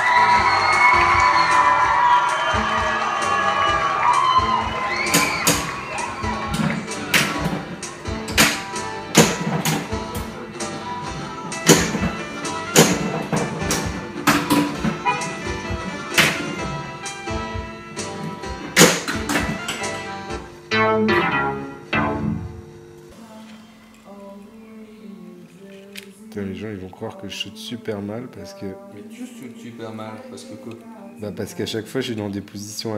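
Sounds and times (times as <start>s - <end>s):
pinball electronic music and effects: 20.7s - 23.0s.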